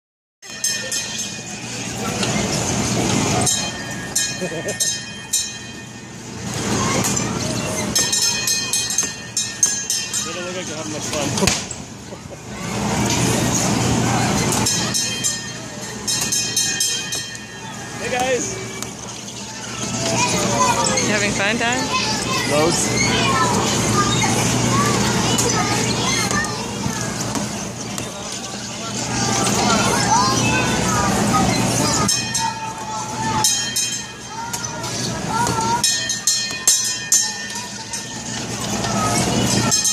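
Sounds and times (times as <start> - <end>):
carousel ride mechanical running: 0.4 - 39.9
children chattering: 0.6 - 39.9.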